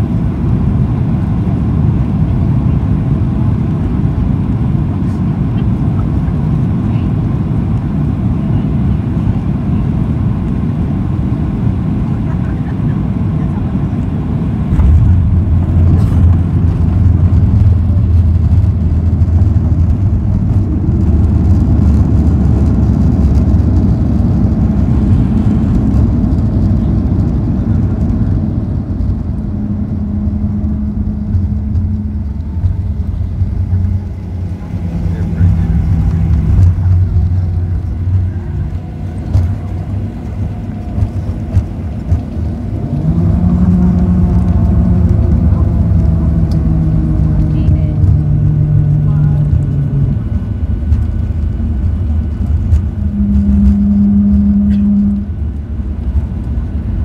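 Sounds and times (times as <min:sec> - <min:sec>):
aircraft engines rumbling: 0:00.0 - 0:57.0
droning hums: 0:00.0 - 0:57.0.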